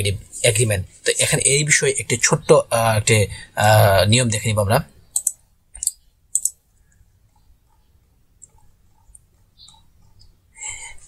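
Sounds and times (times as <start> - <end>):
keyboard keys clicking: 5.2 - 6.6.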